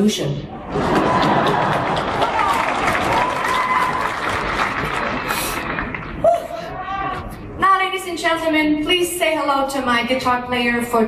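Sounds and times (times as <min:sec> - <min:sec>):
audience applauding and cheering: 0:00.6 - 0:07.4
crowd shouts: 0:02.1 - 0:04.4, 0:06.2 - 0:07.3.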